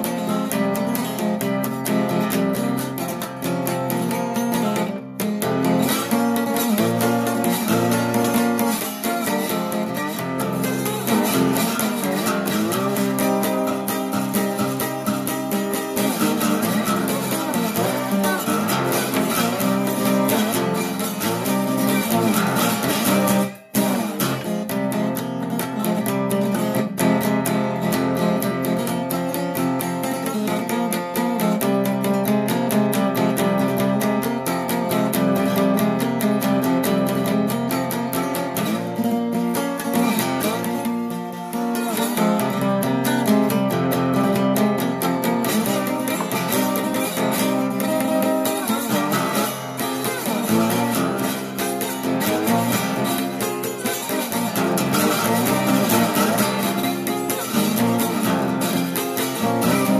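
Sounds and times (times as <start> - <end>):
resonator guitar plucked notes: 0.0 - 59.9.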